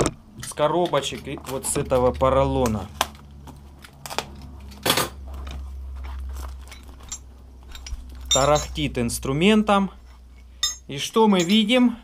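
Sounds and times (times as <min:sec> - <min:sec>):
foam packing rustling and scraping: 0:05.2 - 0:07.1.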